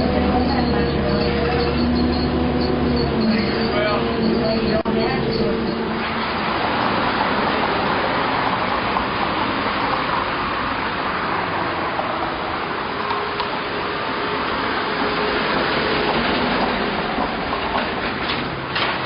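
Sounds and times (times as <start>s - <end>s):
city road traffic: 0.0s - 19.0s.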